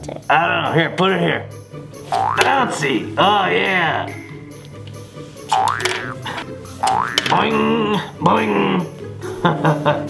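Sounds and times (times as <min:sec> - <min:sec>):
cartoon boing: 0:02.2 - 0:02.6, 0:05.5 - 0:06.2, 0:06.8 - 0:07.4.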